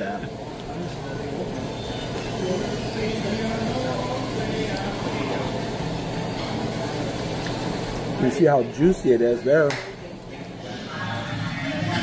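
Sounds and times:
murmur of diners' voices: 0.0s - 12.0s.

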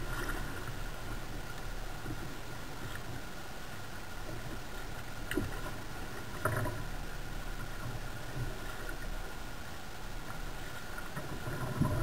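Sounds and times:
kayak paddle strokes in water: 0.0s - 12.0s.

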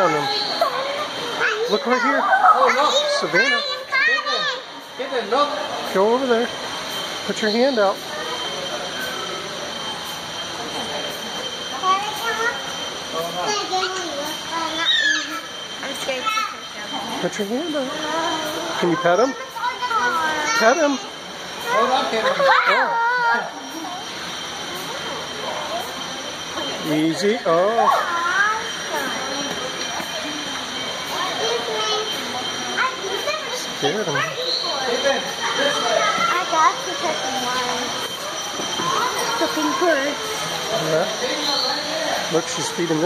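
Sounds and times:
distant people and children talking: 0.0s - 43.0s
steady background hiss: 0.0s - 43.0s
thin high steady tone: 0.0s - 43.0s.

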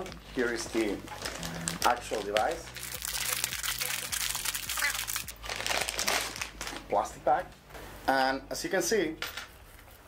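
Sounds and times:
plastic bag crinkling: 0.0s - 6.9s.

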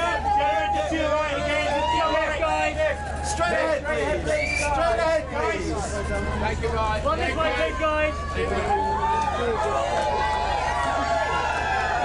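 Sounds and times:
photographers shouting: 0.0s - 5.3s.

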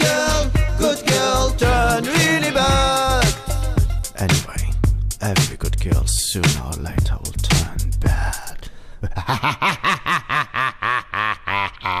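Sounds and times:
person laughing: 9.0s - 12.0s.

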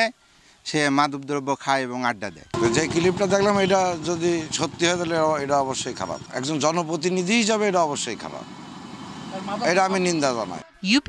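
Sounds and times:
man speaking into a microphone: 0.7s - 8.4s, 9.4s - 11.0s
motor vehicle passing: 2.6s - 10.7s.

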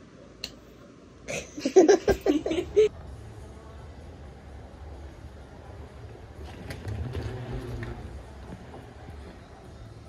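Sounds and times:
wheeled suitcase rolling: 6.4s - 10.0s.

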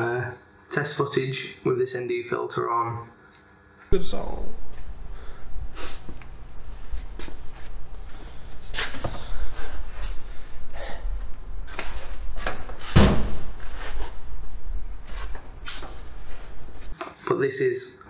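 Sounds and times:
low rumble: 4.0s - 16.9s.

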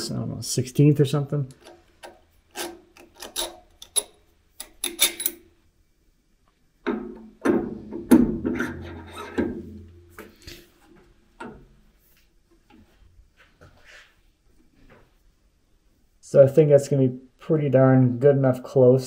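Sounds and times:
metal scraping with faint ring: 8.6s - 10.7s.

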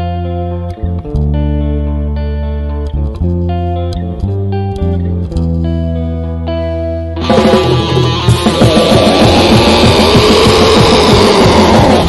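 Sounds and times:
distorted electric guitars: 0.0s - 12.0s
fast drumming: 7.2s - 12.0s.

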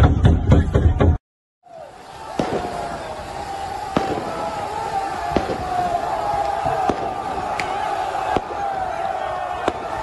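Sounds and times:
firecracker bangs: 1.9s - 10.0s.

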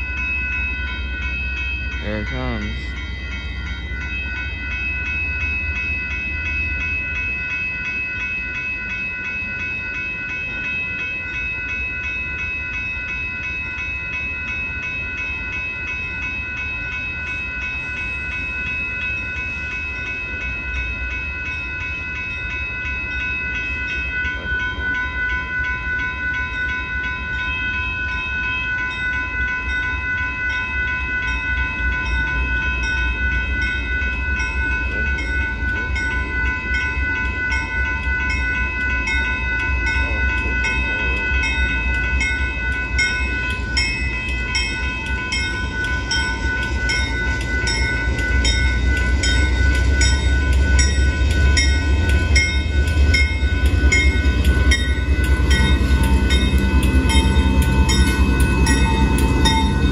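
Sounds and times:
crossing warning bell ringing: 0.0s - 59.9s
freight train rumbling: 0.0s - 59.9s.

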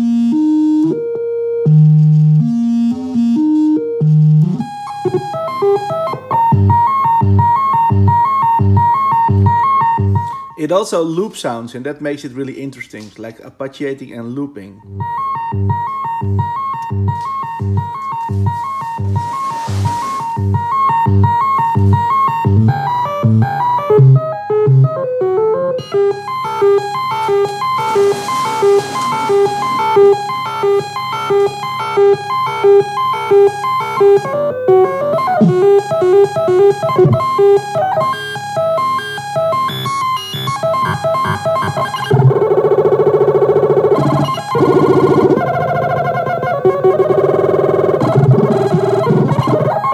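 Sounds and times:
glitchy synthesizer pattern: 0.0s - 10.3s, 14.9s - 49.9s.

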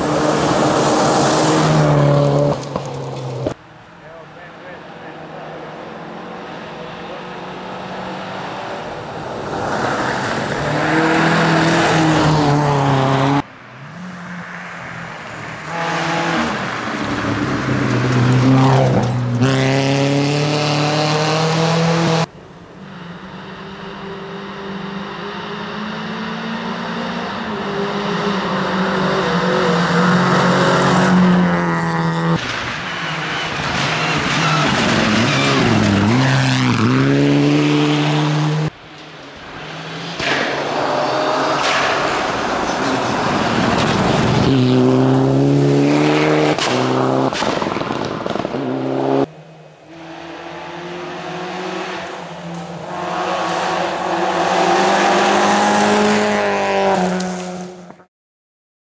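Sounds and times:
rally cars revving past: 0.0s - 3.6s, 4.8s - 22.3s, 22.9s - 58.1s.

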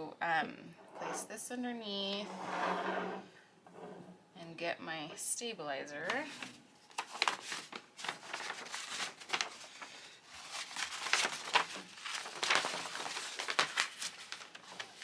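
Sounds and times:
paper material crinkling: 6.0s - 15.0s.

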